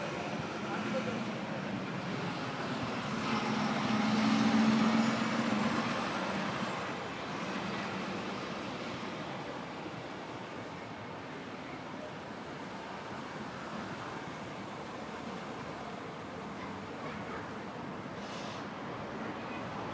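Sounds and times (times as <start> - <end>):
steady traffic noise: 0.0 - 19.9
vehicle engine passing: 2.1 - 6.8.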